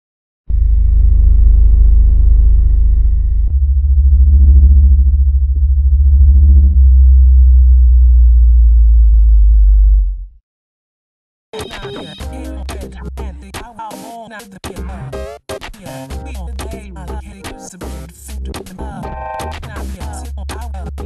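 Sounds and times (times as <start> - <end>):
deep synthesized bass drone: 0.5 - 10.4, 16.1 - 21.0.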